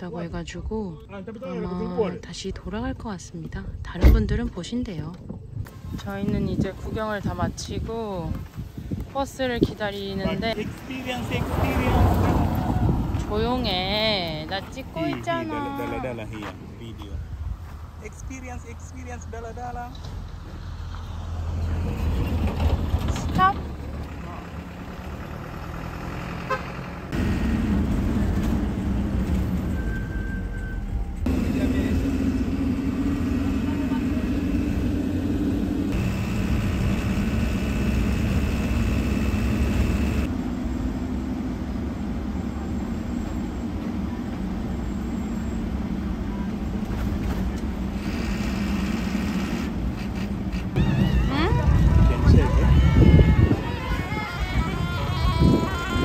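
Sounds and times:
minibus engine and road noise: 0.0s - 56.0s
busy street noise: 5.6s - 18.0s, 18.7s - 40.6s, 42.0s - 56.0s.

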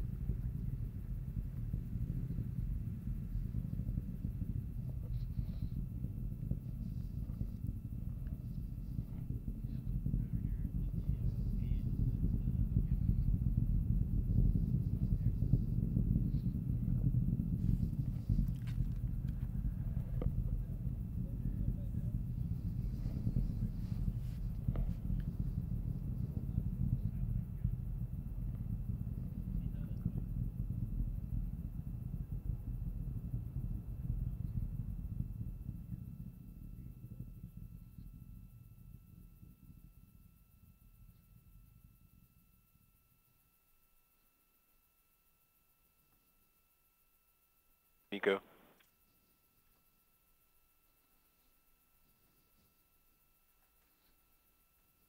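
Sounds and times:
distant rocket engine rumble: 0.0s - 43.8s.

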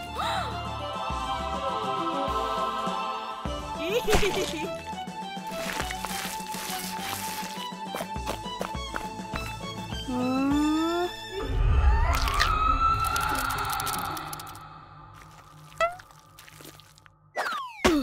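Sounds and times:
cartoon music: 10.0s - 11.4s.

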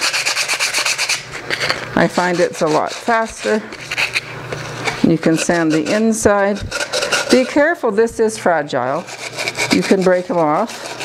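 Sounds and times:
sandpaper rubbing on clay: 0.0s - 1.4s, 2.0s - 7.8s, 8.9s - 11.0s.

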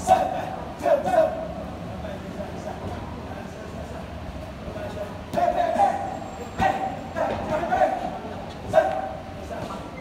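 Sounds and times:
faint indistinct voices: 0.0s - 10.0s
low rumble and hiss: 0.0s - 10.0s.

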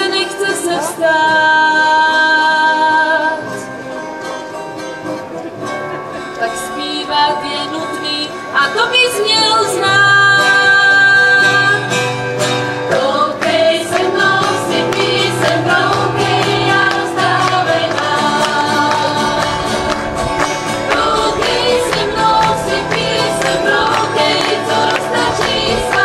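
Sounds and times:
acoustic guitars strumming: 0.0s - 26.0s
women singing together: 12.9s - 20.0s, 20.7s - 26.0s.

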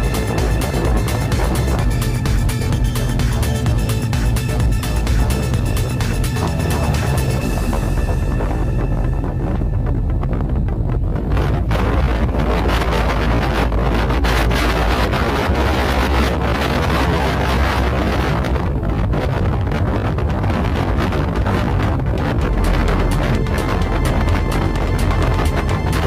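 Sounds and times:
strong wind buffeting microphone: 0.0s - 26.0s.

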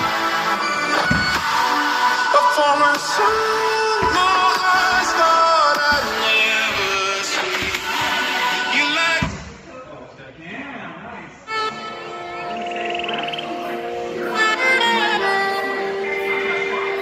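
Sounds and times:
song with vocals: 0.0s - 9.7s, 11.5s - 17.0s.

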